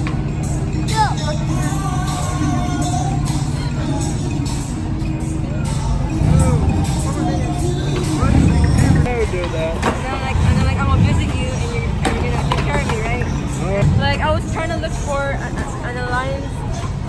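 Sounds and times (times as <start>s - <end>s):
low traffic rumble: 0.0s - 17.0s
people talking: 6.3s - 16.6s.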